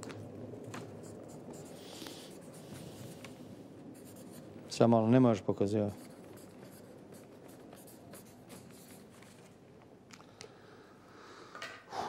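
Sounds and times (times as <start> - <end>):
pen scratching on paper: 1.0 - 3.3, 4.0 - 4.5, 6.0 - 9.2
paper rustling: 6.0 - 9.6.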